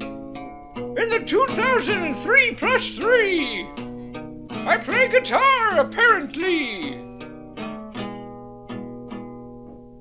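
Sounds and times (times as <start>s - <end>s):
guitar chords strummed: 0.0s - 10.0s.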